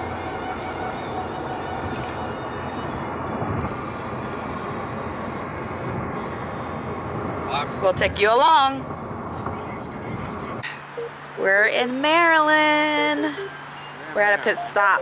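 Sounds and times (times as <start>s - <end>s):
road and tyre noise in car: 0.0s - 15.0s.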